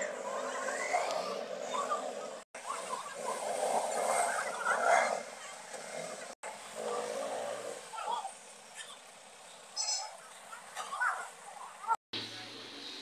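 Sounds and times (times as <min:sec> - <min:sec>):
street noise: 0:00.0 - 0:13.0.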